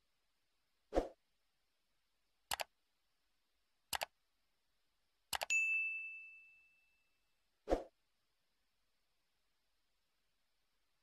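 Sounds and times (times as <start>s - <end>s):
mouse clicks: 2.5s - 2.7s, 3.9s - 4.2s, 5.3s - 5.5s
notification bell ding: 5.5s - 7.0s.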